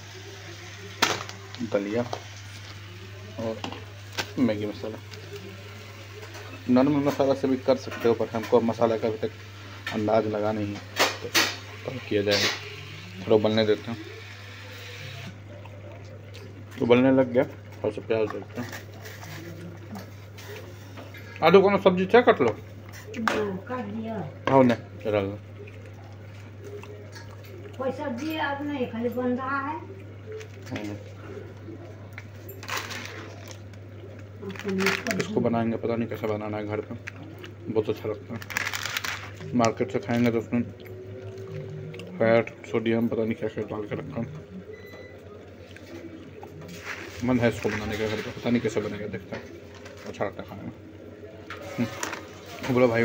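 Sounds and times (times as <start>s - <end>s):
gas stove burner hiss: 0.0s - 15.3s
plastic packets crinkling: 32.2s - 35.5s, 36.2s - 40.4s, 46.6s - 50.4s.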